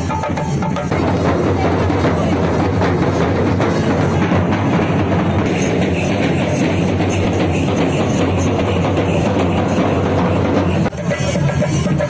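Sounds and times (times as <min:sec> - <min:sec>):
drums playing fast dense beat: 0:00.0 - 0:12.0.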